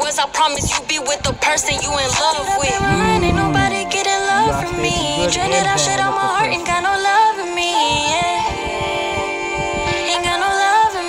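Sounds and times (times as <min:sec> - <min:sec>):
woman singing held notes: 0:02.7 - 0:06.5.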